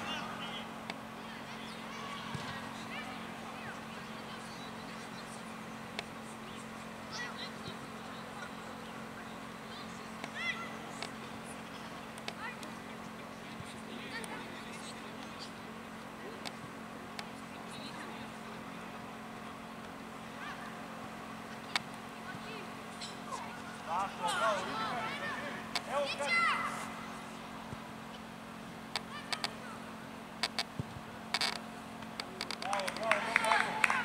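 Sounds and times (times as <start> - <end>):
steady low hum: 0.0 - 34.0
players shouting: 22.6 - 27.0, 32.6 - 34.0.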